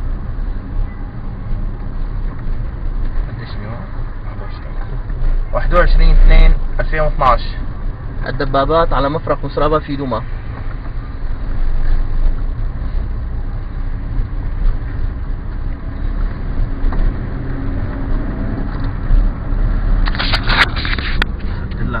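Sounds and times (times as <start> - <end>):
tank engine rumbling: 0.0 - 22.0.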